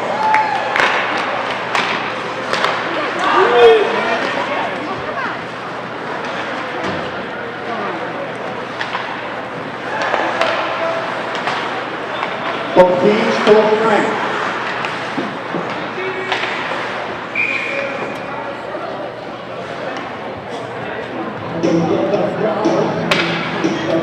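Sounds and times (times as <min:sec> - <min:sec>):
clacks of sticks and puck: 0:00.7 - 0:02.9, 0:08.7 - 0:09.2, 0:09.9 - 0:12.6, 0:14.6 - 0:17.2, 0:23.1 - 0:23.4.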